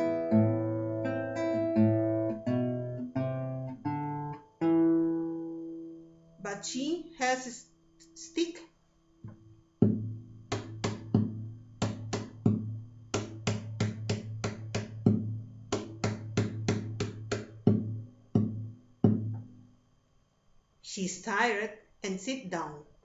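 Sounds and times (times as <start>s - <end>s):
plucked guitar melody: 0.0s - 6.4s, 9.2s - 19.6s.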